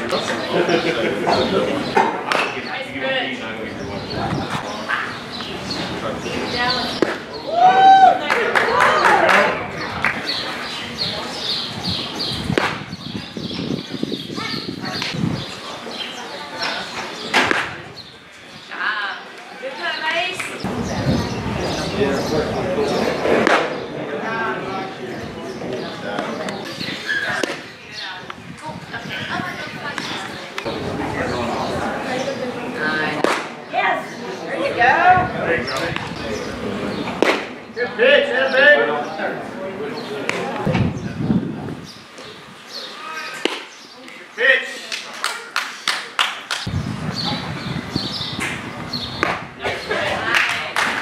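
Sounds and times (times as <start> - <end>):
spectators' voices: 0.0 - 51.0
baseball bat hitting ball: 6.9 - 7.3, 12.5 - 12.8, 17.3 - 17.8, 23.3 - 23.8, 33.2 - 33.6, 37.1 - 37.6, 43.4 - 43.7, 49.2 - 49.8
sharp claps: 12.6 - 12.9, 33.2 - 33.6, 37.2 - 37.6, 44.9 - 46.7, 49.2 - 51.0.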